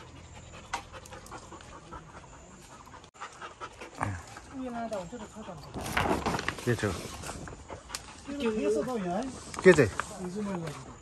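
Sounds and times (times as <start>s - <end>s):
dog panting quietly: 0.0s - 5.7s, 6.8s - 11.0s.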